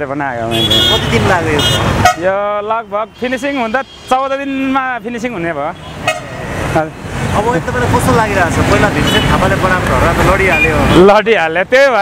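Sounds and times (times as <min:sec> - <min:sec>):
voices: 0:00.0 - 0:12.0
vehicle horn toot: 0:00.5 - 0:02.3, 0:05.8 - 0:06.3.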